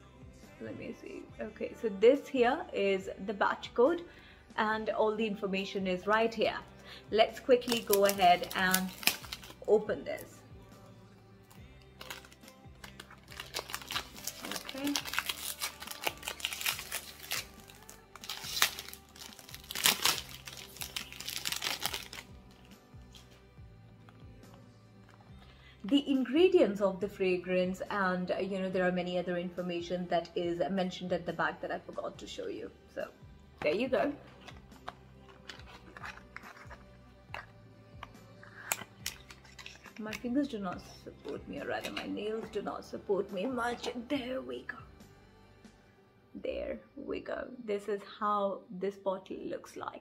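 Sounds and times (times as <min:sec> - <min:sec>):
quiet background music: 0:00.0 - 0:50.0
cellophane wrap crinkling: 0:07.6 - 0:09.7, 0:11.5 - 0:23.4, 0:34.4 - 0:37.5, 0:38.7 - 0:40.2.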